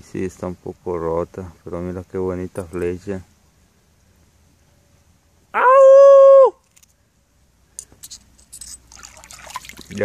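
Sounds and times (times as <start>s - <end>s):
loud high cry: 5.6s - 6.6s.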